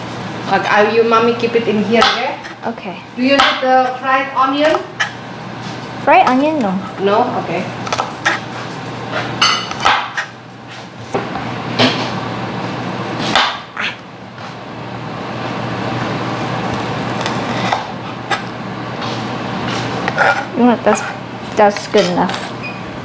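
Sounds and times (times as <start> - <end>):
steady low hum: 0.0 - 23.0.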